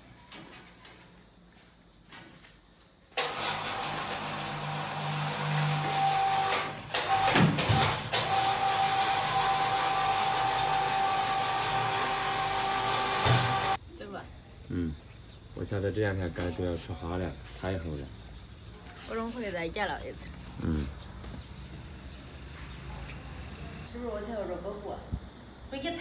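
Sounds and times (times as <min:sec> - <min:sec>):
electric machine motor whining: 0:03.2 - 0:13.8.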